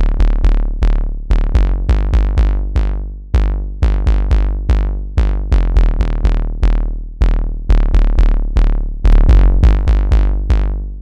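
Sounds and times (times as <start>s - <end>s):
synth bass: 0.0s - 11.0s.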